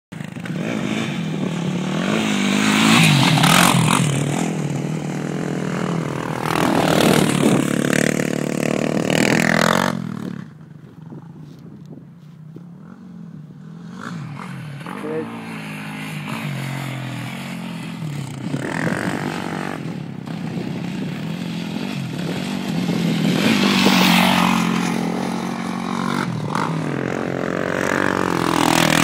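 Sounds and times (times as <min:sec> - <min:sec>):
quad engines revving: 0:00.2 - 0:10.6, 0:12.9 - 0:29.0.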